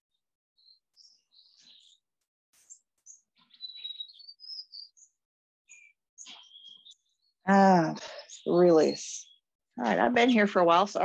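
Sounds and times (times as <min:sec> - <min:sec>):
birds chirping and whistling: 0:00.6 - 0:02.0, 0:02.6 - 0:11.0.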